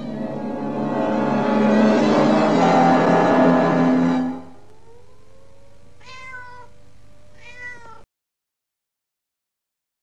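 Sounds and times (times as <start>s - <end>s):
cat meowing: 6.0s - 8.1s.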